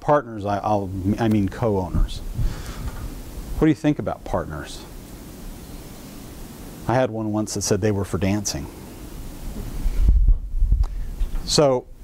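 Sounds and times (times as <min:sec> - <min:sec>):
clip-on microphone handling thumps: 0:01.2 - 0:03.2, 0:09.5 - 0:11.5.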